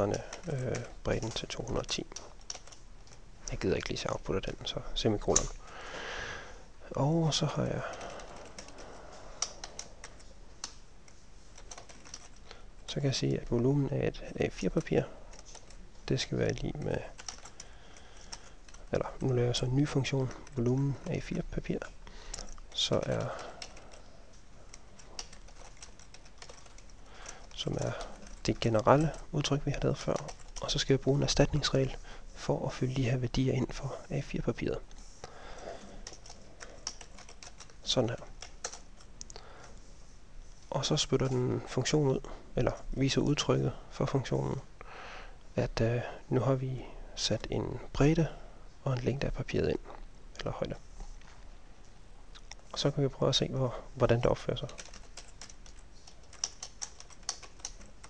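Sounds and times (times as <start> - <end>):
computer keyboard typing: 0.0 - 5.8, 7.4 - 13.7, 14.3 - 32.0, 35.7 - 39.8, 54.4 - 58.0
keyboard typing clicks: 54.7 - 58.0.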